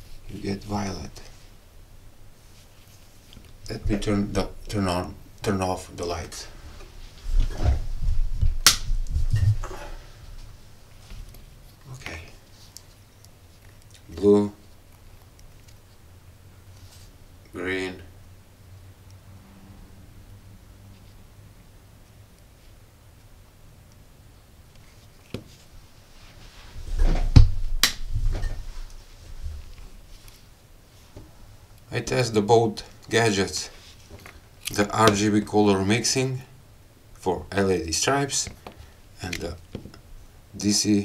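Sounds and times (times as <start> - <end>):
thumps of someone moving: 26.8 - 28.8.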